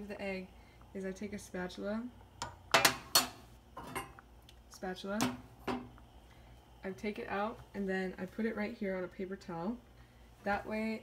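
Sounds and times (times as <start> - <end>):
spatula clattering on metal grate: 2.4 - 4.2.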